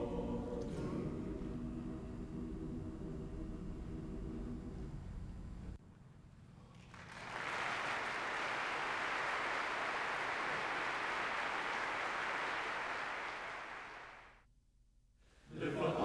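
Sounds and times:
audience applauding: 6.6s - 14.4s.

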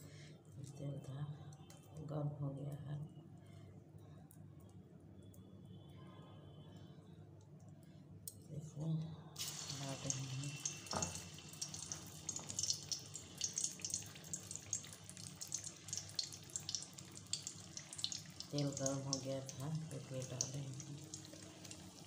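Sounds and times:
batter sizzling in hot oil: 9.4s - 22.0s.

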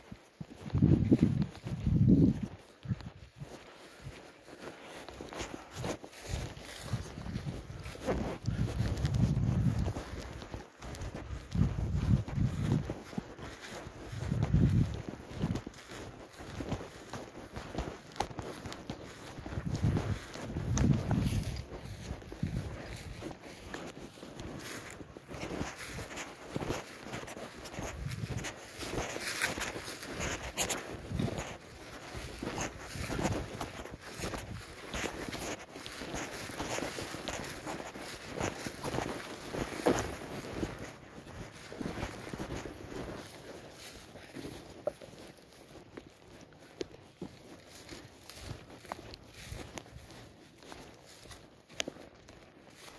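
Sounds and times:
footsteps through dry grass: 0.0s - 52.9s.

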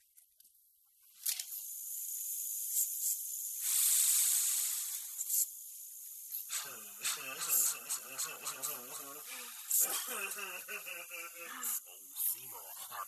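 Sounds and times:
gas hissing into mask: 1.5s - 13.0s.

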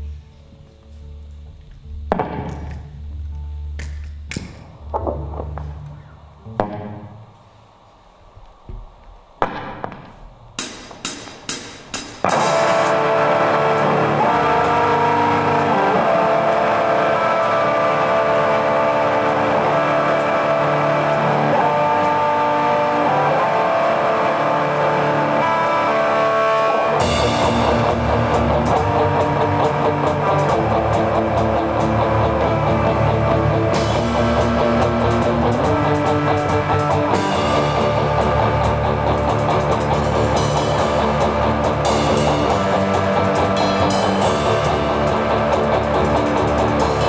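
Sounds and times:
steady cymbal beat: 10.5s - 47.0s
instrumental rock band: 10.6s - 47.0s
electric guitar chords: 12.2s - 47.0s.

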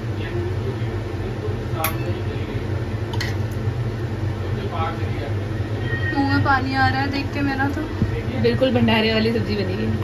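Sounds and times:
exhaust fan humming: 0.0s - 10.0s.

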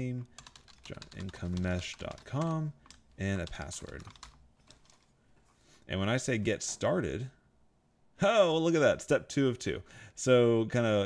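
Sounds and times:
computer keyboard typing: 0.4s - 5.1s.

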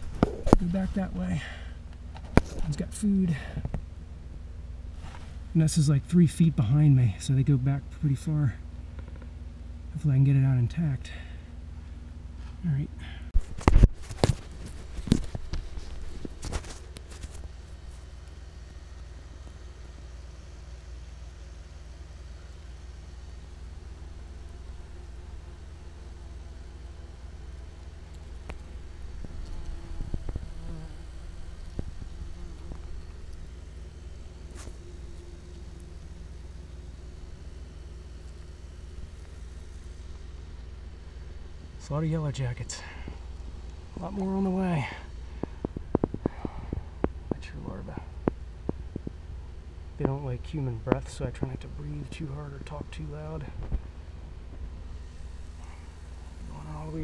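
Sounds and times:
steady low hum: 0.0s - 57.0s
wasps buzzing: 13.5s - 57.0s.

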